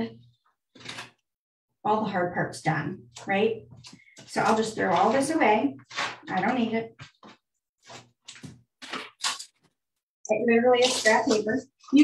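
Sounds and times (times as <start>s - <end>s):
paper crumpling by hand: 5.8s - 9.6s.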